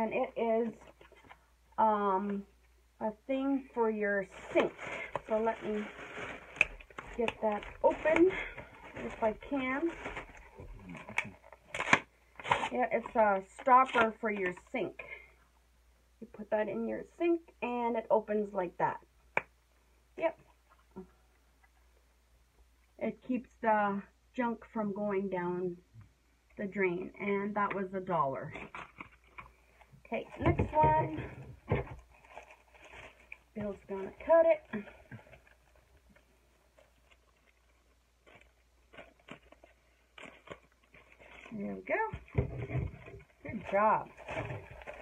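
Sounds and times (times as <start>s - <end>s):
scissors cutting plastic package: 4.6s - 8.3s, 9.9s - 12.7s.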